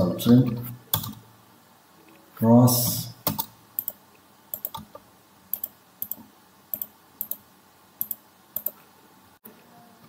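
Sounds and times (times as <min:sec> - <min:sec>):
computer mouse clicking: 0:00.9 - 0:01.2, 0:03.2 - 0:07.4, 0:08.0 - 0:08.8.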